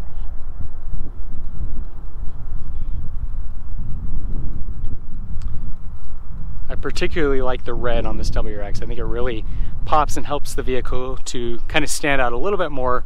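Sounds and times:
footsteps on asphalt: 0.0 - 7.1
wind rumble on microphone: 0.0 - 13.0.

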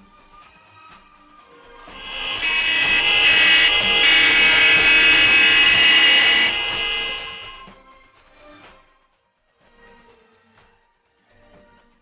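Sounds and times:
car horns blasting: 1.9 - 7.8.

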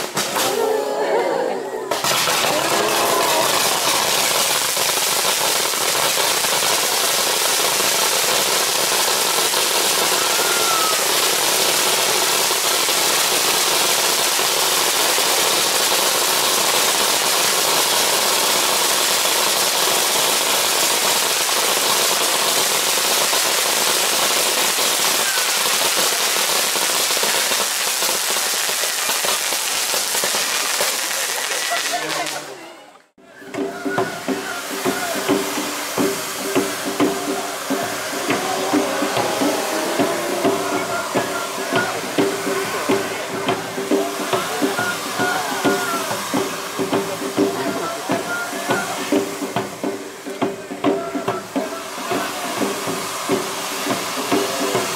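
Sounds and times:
firework spraying sparks hiss: 1.9 - 32.6, 33.5 - 54.9.

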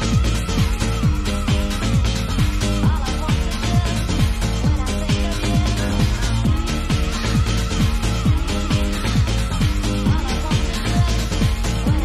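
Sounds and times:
kick drum thumping: 0.0 - 12.0.

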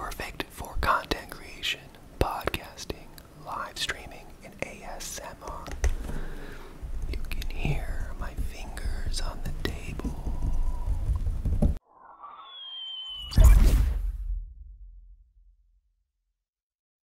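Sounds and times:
man whispering into a microphone: 0.0 - 5.8, 6.9 - 11.1
high sliding whistle-like tone: 11.8 - 14.0.

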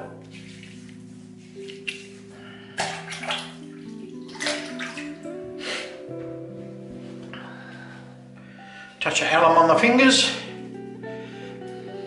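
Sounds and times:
water splashing on face: 2.8 - 5.2.

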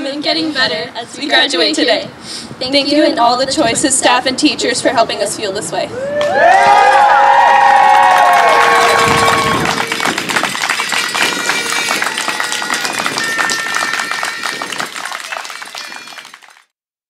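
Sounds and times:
crowd cheering with whoops: 5.9 - 10.5
crowd clapping: 6.2 - 16.7.

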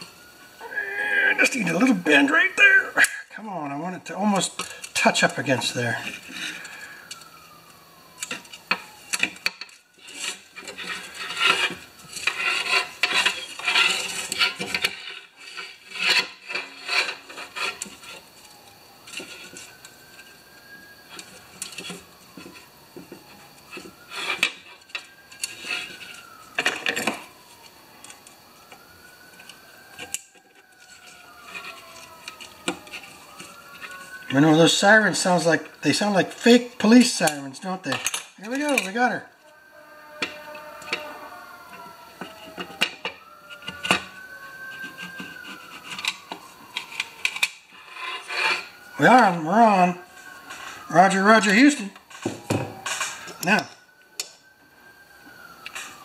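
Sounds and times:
faint sirens wailing: 0.0 - 56.0
metal and plastic clicks and scraping: 4.5 - 20.3, 40.2 - 48.8.

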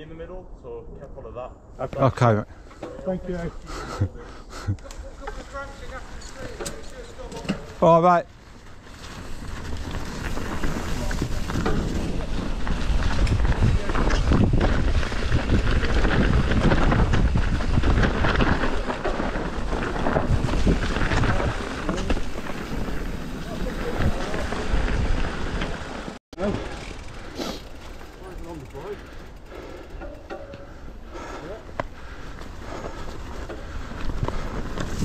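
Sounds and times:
bike tyres on dirt trail: 1.6 - 35.0
bike knocks and rattles: 5.2 - 8.0, 8.9 - 27.0, 29.4 - 35.0
wind rumble on microphone: 9.3 - 25.8.

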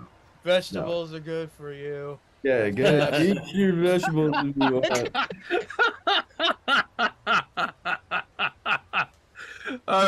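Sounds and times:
man laughing hard: 2.8 - 9.9.

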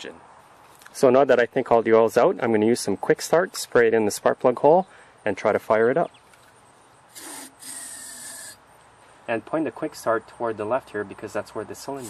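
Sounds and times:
aerosol spray hissing: 7.1 - 8.6.

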